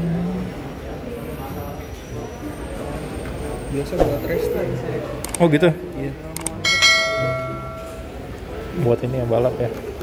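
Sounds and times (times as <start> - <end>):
bright bell ding: 6.7 - 8.2.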